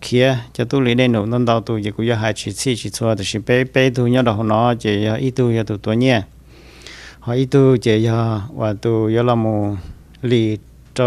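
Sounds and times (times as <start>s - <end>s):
man talking: 0.0s - 6.4s, 7.2s - 11.0s.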